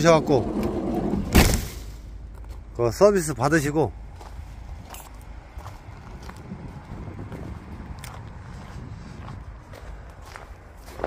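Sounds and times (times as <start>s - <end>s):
soft footsteps: 2.2s - 2.8s, 4.1s - 11.0s.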